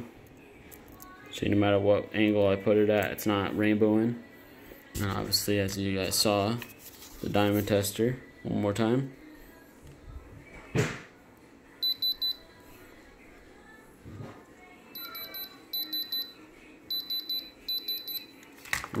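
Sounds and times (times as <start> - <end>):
diamond tester beeping: 11.8 - 12.4, 15.0 - 18.3.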